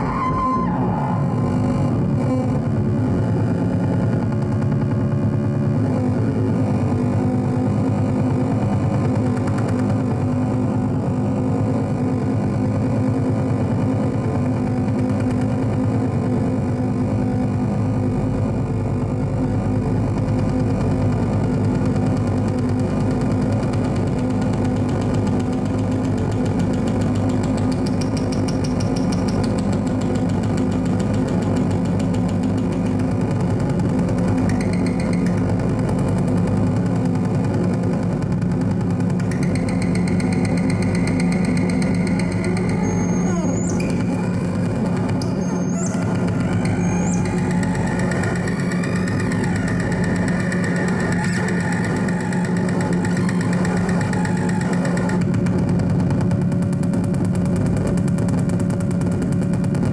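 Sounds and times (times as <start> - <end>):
dense low synthesizer drone: 0.0 - 59.9.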